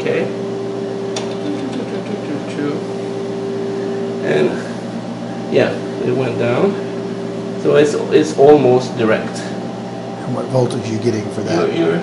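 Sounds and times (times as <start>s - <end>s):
electrical hum with steady tone: 0.0s - 12.0s.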